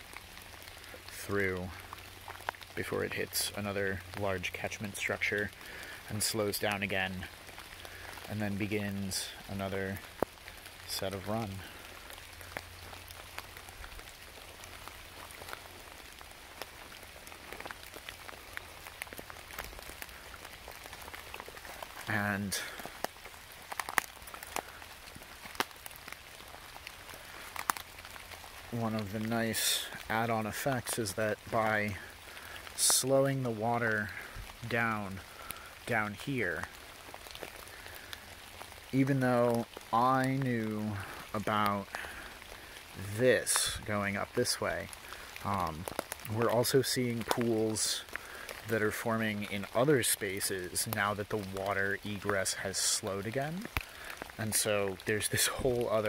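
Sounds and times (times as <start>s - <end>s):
rain on wet leaf litter: 0.0s - 56.0s
single raindrop ticks: 12.0s - 28.6s.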